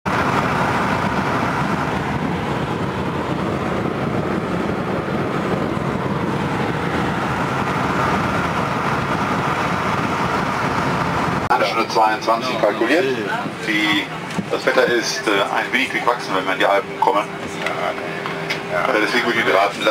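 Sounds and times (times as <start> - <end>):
car engine and tyre noise: 0.0 - 19.9.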